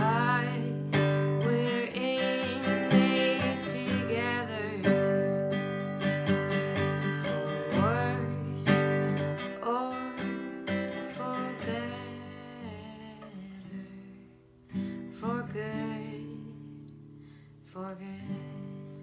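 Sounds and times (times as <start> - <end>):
acoustic guitar strumming: 0.0 - 17.4
woman singing: 0.0 - 19.0.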